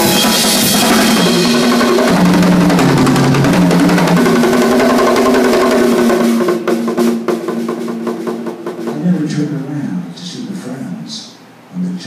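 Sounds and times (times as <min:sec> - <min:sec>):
drums and cymbals: 0:00.0 - 0:09.6.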